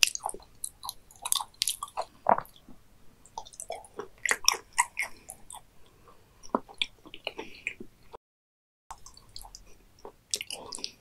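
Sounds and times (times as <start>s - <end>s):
wet chewing mouth clicks and smacks: 0.0s - 7.9s, 8.9s - 11.0s.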